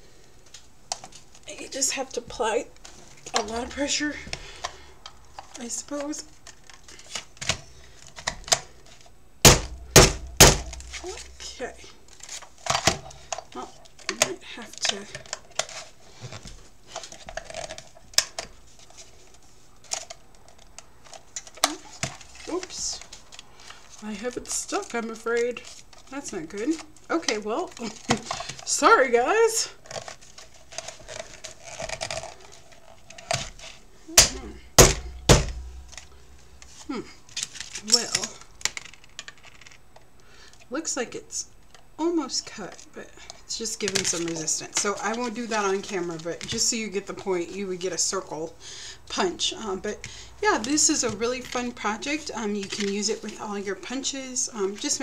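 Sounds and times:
card rustling: 0.1 - 28.7, 29.7 - 40.6
person speaking: 1.5 - 4.3, 10.4 - 12.0, 13.5 - 15.2, 34.0 - 36.0, 37.8 - 38.4
punch thunking through card: 9.5 - 11.0, 34.2 - 36.0.

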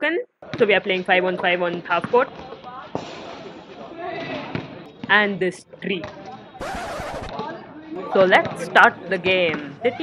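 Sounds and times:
players calling out: 6.6 - 7.4.

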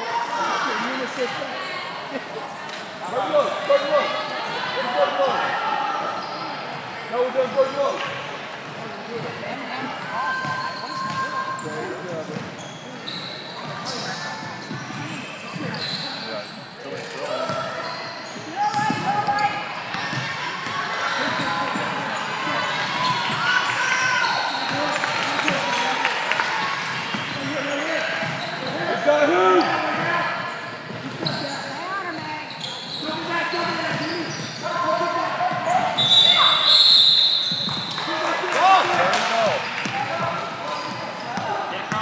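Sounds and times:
voices calling out and chattering: 0.0 - 42.0.

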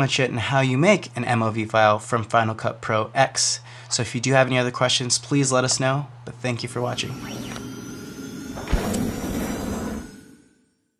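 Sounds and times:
held swelling tone: 6.8 - 10.9
swoosh: 6.9 - 10.9
deep hit: 8.5 - 10.3.

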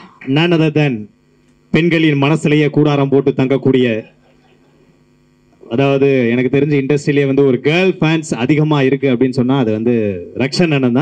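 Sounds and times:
man speaking into a microphone: 0.0 - 4.2, 5.6 - 11.0
sound system hum: 0.0 - 11.0.

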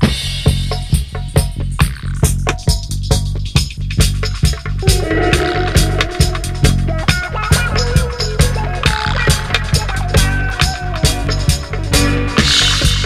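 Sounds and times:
drums keeping a beat: 0.0 - 13.0
reggae bass line: 0.3 - 13.0
short melodic instrument lines: 4.8 - 7.4.

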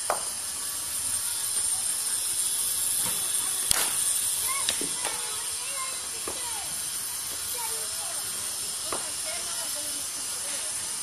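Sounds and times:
steady outdoor hiss: 0.0 - 11.0
distant voices calling: 0.7 - 10.9.

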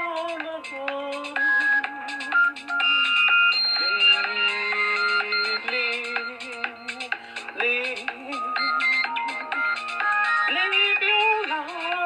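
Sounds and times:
woman singing: 0.0 - 3.2, 3.8 - 12.0
electronic keyboard tones: 1.4 - 7.1, 8.3 - 10.6.

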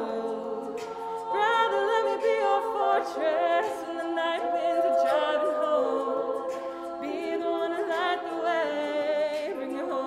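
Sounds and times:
women singing in close harmony: 0.0 - 10.0.

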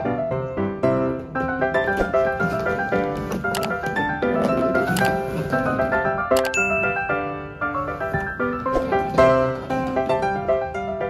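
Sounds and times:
silent-film style piano music: 0.0 - 11.0
bright bell ding: 6.5 - 7.4.

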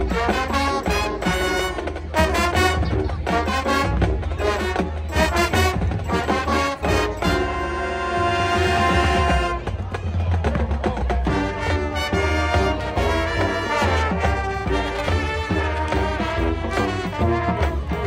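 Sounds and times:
marching band playing: 0.0 - 18.0.

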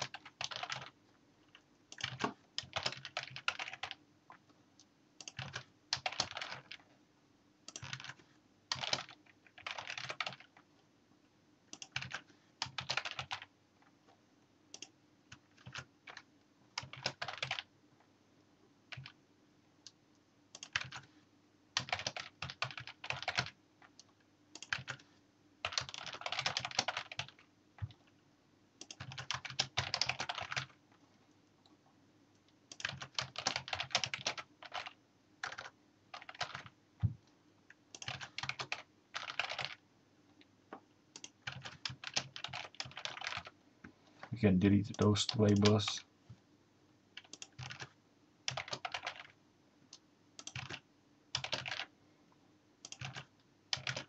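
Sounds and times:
typing on computer keyboard: 0.0 - 4.0, 5.2 - 6.9, 7.6 - 10.6, 11.7 - 13.5, 14.7 - 17.7, 18.9 - 19.2, 20.5 - 21.1, 21.8 - 25.0, 25.6 - 28.1, 28.8 - 30.8, 32.7 - 36.8, 37.9 - 39.8, 41.1 - 43.6, 47.2 - 51.9, 52.8 - 54.0.

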